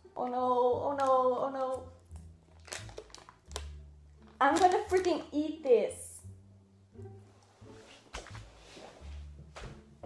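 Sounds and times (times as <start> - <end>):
foil wrapper crinkling: 2.1 - 5.3.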